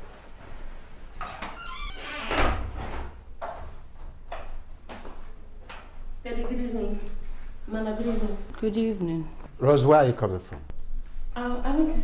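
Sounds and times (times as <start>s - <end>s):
footsteps on indoor stairs: 2.8s - 6.7s.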